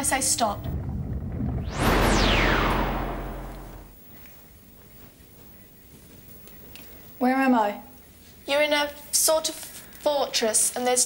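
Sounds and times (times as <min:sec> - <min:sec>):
deep rumble: 0:00.7 - 0:04.0
synthesised whoosh: 0:01.6 - 0:04.0.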